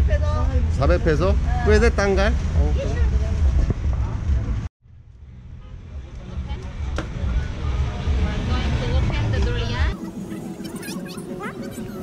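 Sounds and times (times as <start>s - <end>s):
road traffic rumble: 0.0s - 12.0s
voices: 5.6s - 12.0s.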